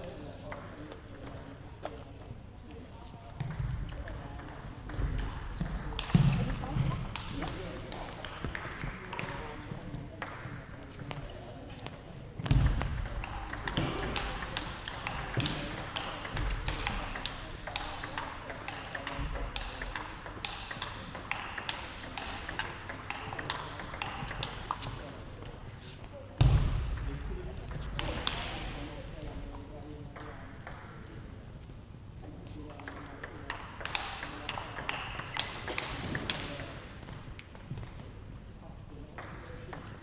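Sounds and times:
table tennis balls clicking: 0:12.5 - 0:25.6, 0:32.8 - 0:38.1.

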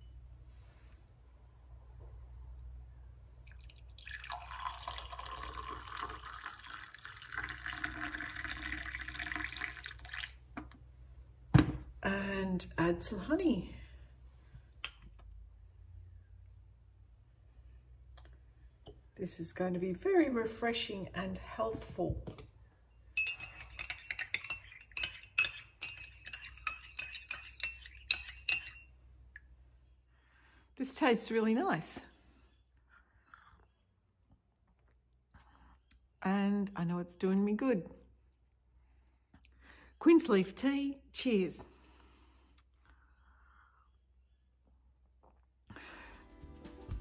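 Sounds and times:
tea pouring into a mug: 0:03.5 - 0:10.4
teaspoon clinking in a teacup: 0:23.1 - 0:28.9.

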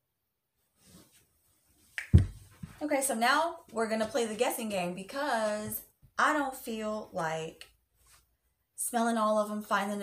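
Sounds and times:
woman speaking: 0:02.8 - 0:07.7, 0:08.8 - 0:10.0.

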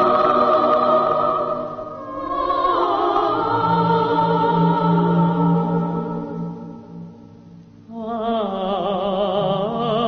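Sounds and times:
choir singing sustained notes: 0:00.0 - 0:10.0.

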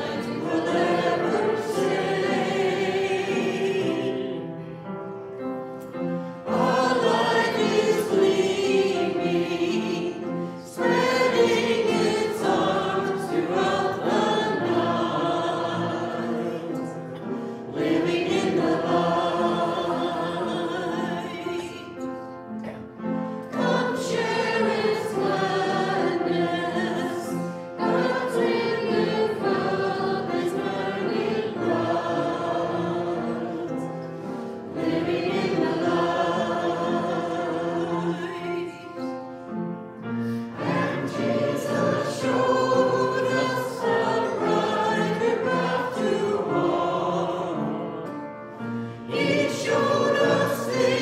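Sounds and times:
congregation singing a hymn: 0:00.0 - 0:51.0.

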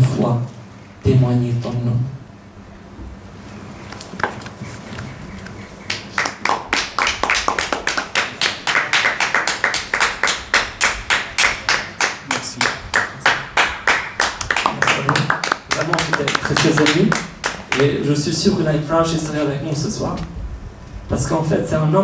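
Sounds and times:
hands clapping rhythmically: 0:05.8 - 0:18.0.

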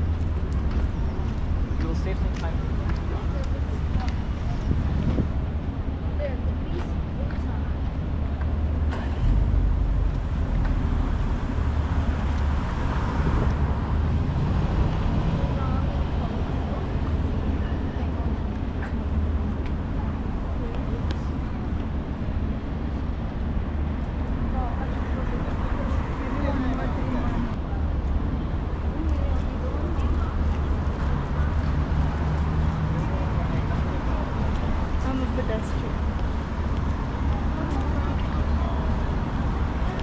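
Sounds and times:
passers-by talking faintly: 0:00.0 - 0:40.0
road traffic rumble: 0:00.0 - 0:40.0.

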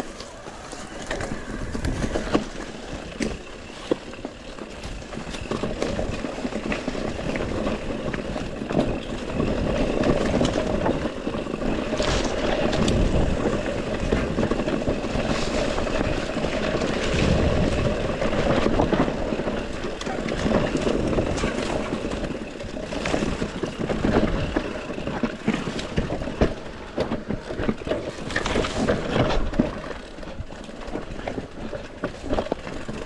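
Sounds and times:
bike knocks and rattles: 0:00.0 - 0:33.0
bike tyre noise on dirt: 0:00.0 - 0:33.0.

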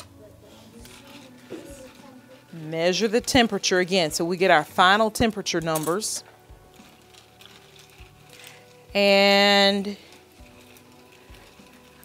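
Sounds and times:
thermometer stirring ice water: 0:00.7 - 0:12.0.

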